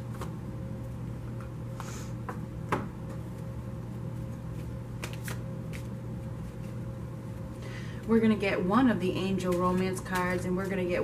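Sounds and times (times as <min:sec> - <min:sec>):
steady low hum: 0:00.0 - 0:11.0
cards shuffling: 0:04.5 - 0:06.8.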